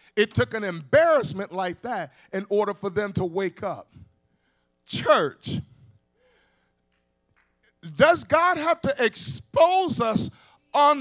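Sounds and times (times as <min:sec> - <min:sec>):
faint steady hum: 0:00.0 - 0:11.0
sharp intake of breath: 0:05.8 - 0:06.8.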